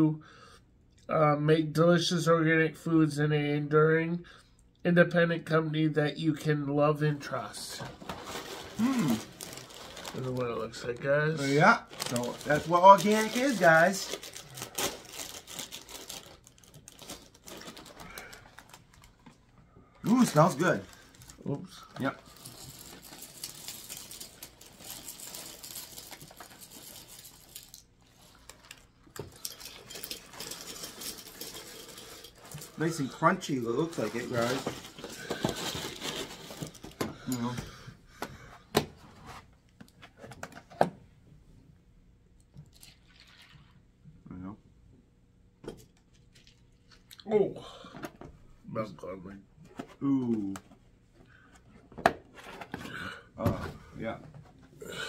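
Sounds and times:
plastic bag crinkling: 8.2s - 19.3s, 20.1s - 37.0s
cereal flakes pattering: 11.9s - 18.4s.

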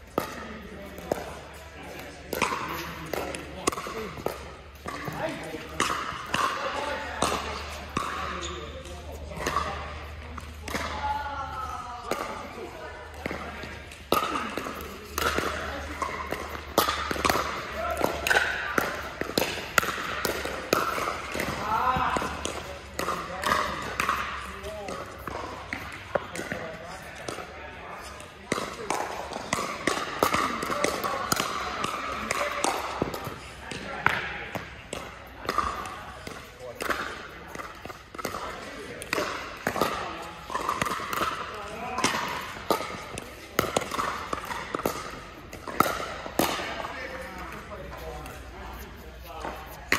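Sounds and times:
ball bouncing on court: 0.0s - 49.9s
people talking: 0.1s - 40.7s, 41.4s - 49.9s
paddles hitting plastic ball: 12.0s - 49.9s.

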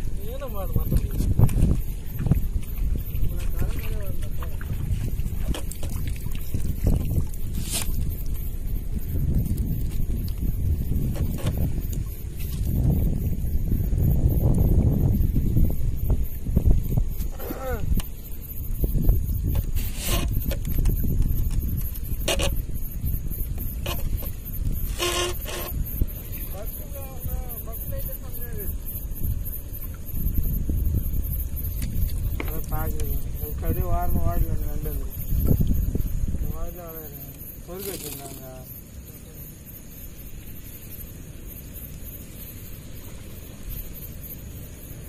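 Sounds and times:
voices: 0.0s - 1.3s, 3.2s - 4.7s, 17.3s - 18.0s, 26.5s - 28.8s, 32.4s - 35.2s, 36.4s - 39.4s
wet net hauled over boat side: 0.0s - 39.2s.

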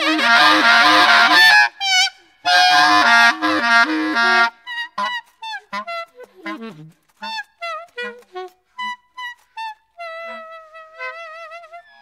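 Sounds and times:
alto saxophone squealing: 0.0s - 12.0s.

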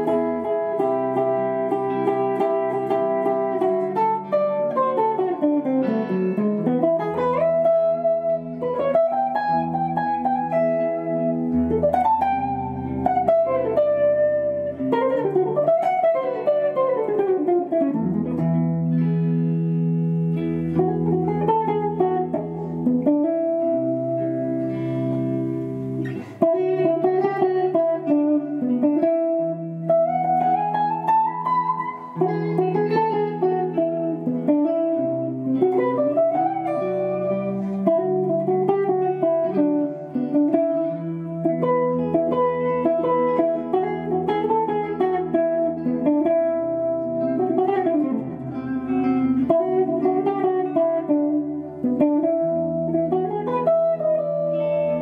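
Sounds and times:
electric guitars playing jazz: 0.0s - 55.0s.

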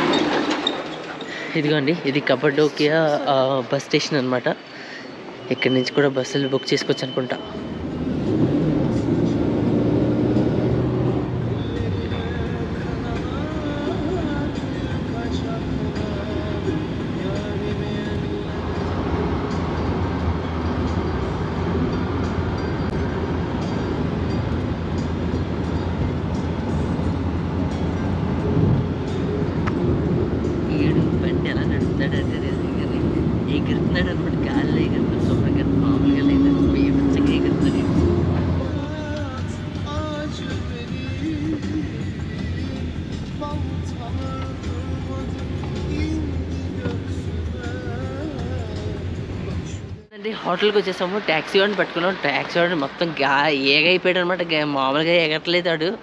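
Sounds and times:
car engine and road noise: 0.0s - 56.0s.

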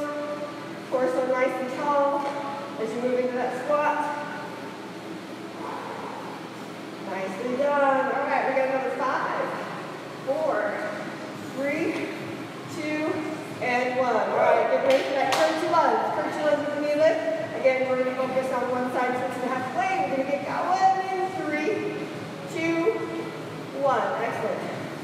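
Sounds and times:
woman talking: 0.0s - 4.4s, 7.0s - 12.1s, 12.7s - 24.9s.

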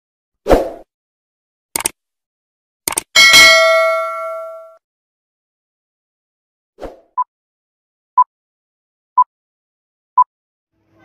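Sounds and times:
mouse double-clicks: 1.8s - 2.0s, 2.9s - 3.1s
notification bell ding: 3.2s - 4.8s.

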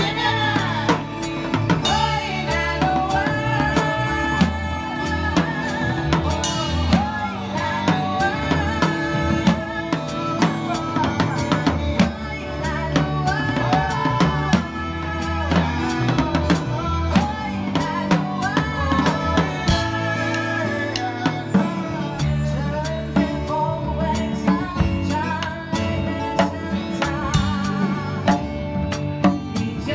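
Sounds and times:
bass notes: 0.0s - 29.9s
drum and cymbal hits: 0.0s - 29.9s.

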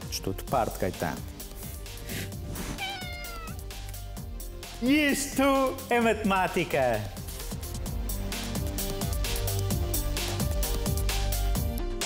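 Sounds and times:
cat meowing: 2.6s - 3.7s
music with a steady beat: 3.2s - 12.0s.

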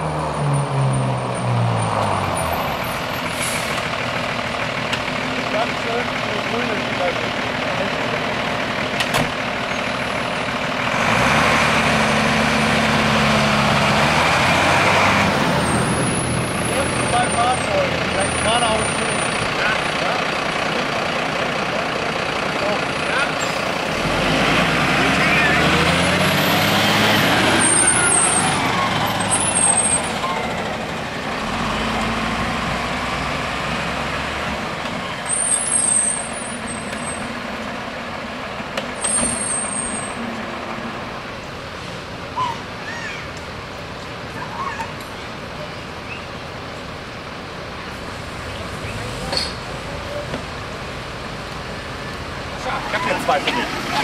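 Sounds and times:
fire truck diesel engines passing: 0.0s - 54.0s
air brakes hissing: 3.2s - 3.9s.

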